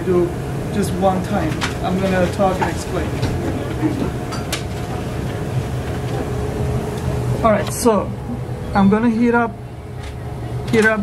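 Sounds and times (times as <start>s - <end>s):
low hum: 0.0s - 10.8s.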